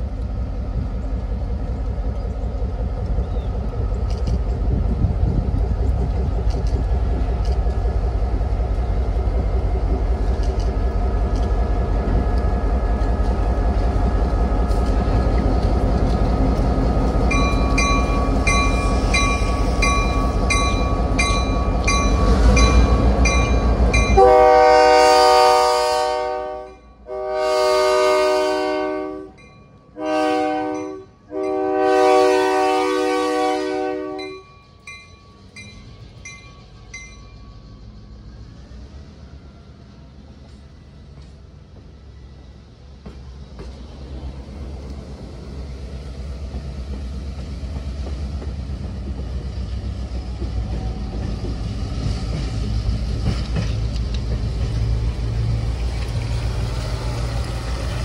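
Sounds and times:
diesel locomotive passing: 0.0s - 58.0s
bell ringing: 17.3s - 24.2s
train air horn blasts: 24.1s - 34.4s.

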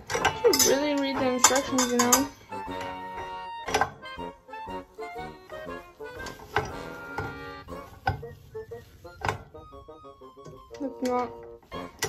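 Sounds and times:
light background music: 0.0s - 12.0s.

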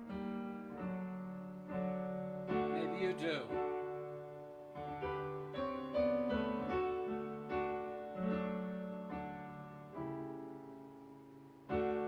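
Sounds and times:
digital piano playing chords: 0.0s - 12.0s.

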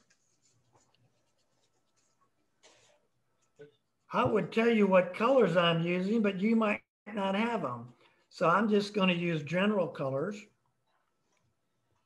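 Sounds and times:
paintbrush stroking paper: 0.0s - 3.6s.

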